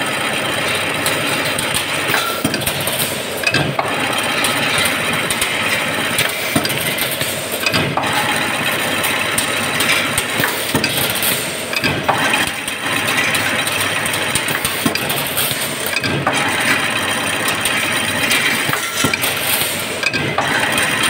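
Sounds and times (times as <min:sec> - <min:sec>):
machine mechanical clatter: 0:00.0 - 0:21.0
sharp metal knocks: 0:02.1 - 0:04.0, 0:06.6 - 0:08.3, 0:10.4 - 0:12.3, 0:15.9 - 0:16.5, 0:20.0 - 0:20.6.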